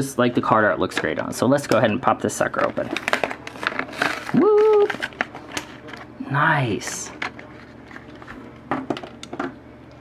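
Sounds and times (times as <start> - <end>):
plastic blister pack clicks and crinkles: 2.5 - 6.1.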